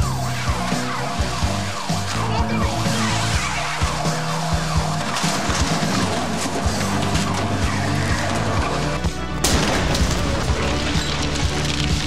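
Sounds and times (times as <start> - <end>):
tyres skidding: 0.0 - 12.0.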